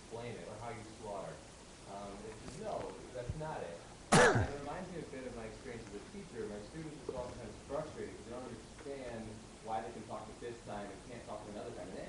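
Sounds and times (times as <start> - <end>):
person clearing throat: 4.1 - 4.7.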